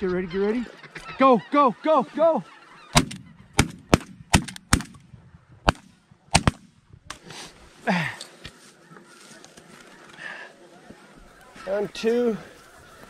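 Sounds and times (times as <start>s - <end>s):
ducks honking: 0.0s - 5.0s, 11.2s - 13.0s
shotgun blasts: 3.0s - 6.7s.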